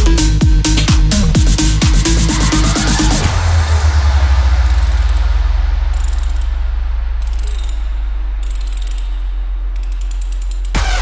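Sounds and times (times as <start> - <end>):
electronic dance music: 0.0 - 8.4, 10.7 - 11.0
deep bass: 0.0 - 11.0
metallic ratchet-like clicking: 4.6 - 11.0.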